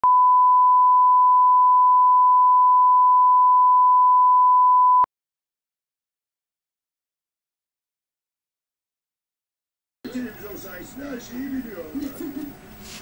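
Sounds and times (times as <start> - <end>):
steady test tone beep: 0.0 - 5.1.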